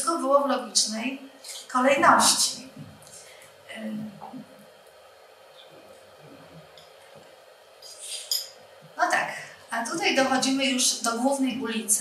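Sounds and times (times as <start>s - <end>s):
person speaking: 1.6s - 2.9s.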